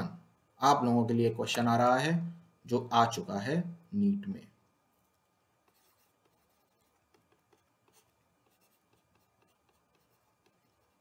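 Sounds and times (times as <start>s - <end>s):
stylus tapping on pen tablet: 6.2s - 10.6s.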